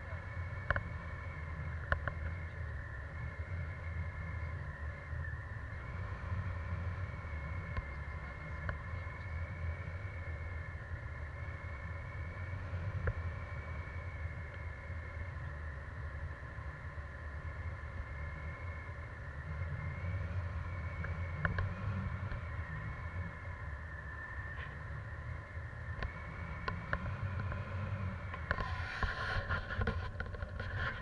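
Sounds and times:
faint steady whine: 0.0 - 31.0.

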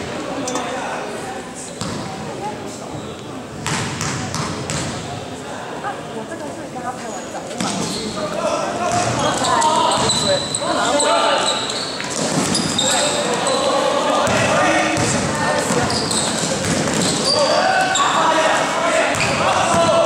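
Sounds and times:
sneakers squeaking on floor: 1.6 - 2.2, 2.8 - 5.2, 7.0 - 18.3, 19.1 - 20.0
basketball bouncing on court: 3.6 - 4.9, 8.9 - 9.3, 14.2 - 17.3, 19.1 - 20.0
people shouting: 17.2 - 20.0.

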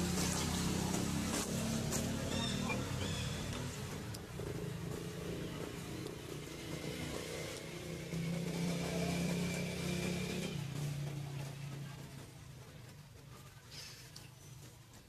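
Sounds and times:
small engine running: 0.0 - 15.0.

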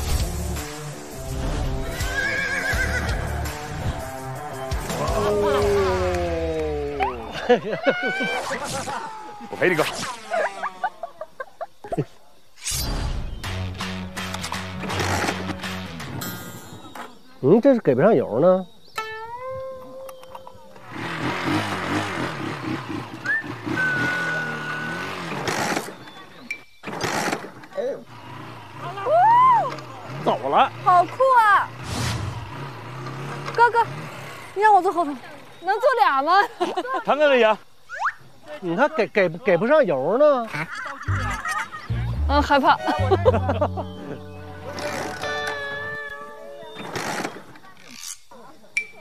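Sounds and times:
background music: 0.0 - 7.3, 13.1 - 16.8, 41.1 - 46.0
horse whinnying: 1.9 - 3.3
small motorcycle engine running: 14.8 - 15.5, 20.8 - 26.2, 26.8 - 35.5, 41.1 - 46.2
thin whistling tone: 23.1 - 25.1, 37.9 - 38.3.

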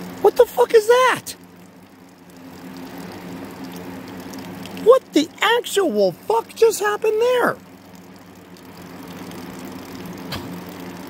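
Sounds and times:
tap water splashing on ground: 1.8 - 5.5, 6.8 - 11.0.

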